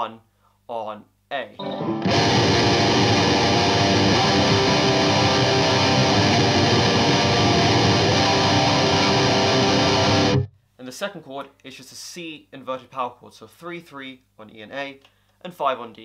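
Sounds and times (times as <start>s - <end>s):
distorted electric guitar: 1.6s - 10.5s.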